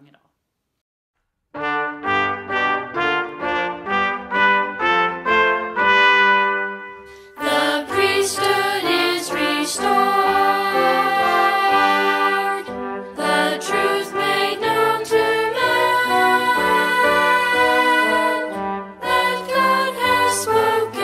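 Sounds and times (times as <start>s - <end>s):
brass instrumental church music: 1.5s - 21.0s.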